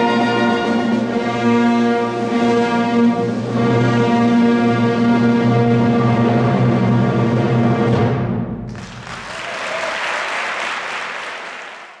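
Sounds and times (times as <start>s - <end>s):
audience applause: 8.7s - 12.0s.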